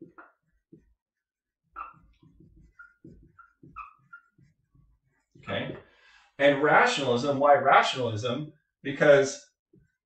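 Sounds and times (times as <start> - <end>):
marker scratching on whiteboard: 0.0 - 5.9, 9.7 - 10.0
high marker squeaks: 1.7 - 5.4.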